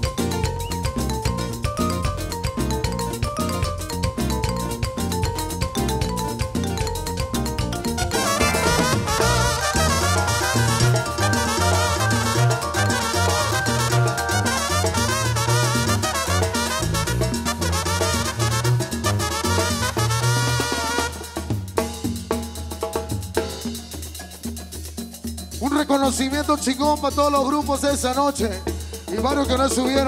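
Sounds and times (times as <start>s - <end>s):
steady drum beat: 0.0s - 30.0s
brass band playing: 7.8s - 21.8s.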